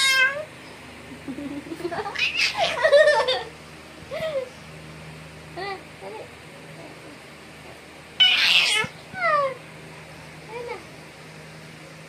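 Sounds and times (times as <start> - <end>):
baby squealing: 2.2 - 2.8, 8.2 - 8.9.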